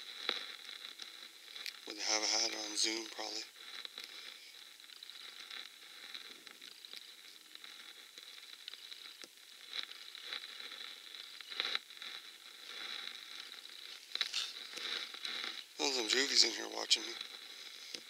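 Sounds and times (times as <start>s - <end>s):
background hiss: 0.0s - 18.0s
faint high-pitched whine: 0.0s - 18.0s.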